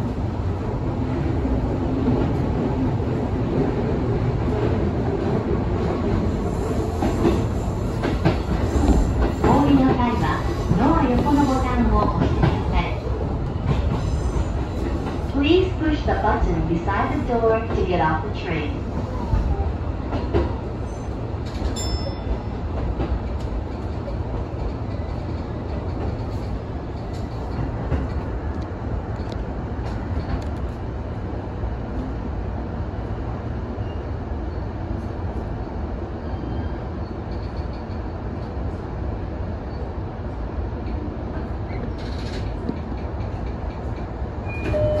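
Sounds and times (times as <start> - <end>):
train wheels rumbling: 0.0 - 33.3, 36.4 - 45.0.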